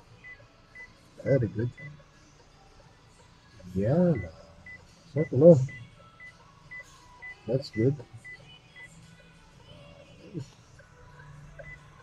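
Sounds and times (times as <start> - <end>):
parking sensor beeping: 0.2 - 2.0, 3.8 - 9.0, 11.6 - 12.0.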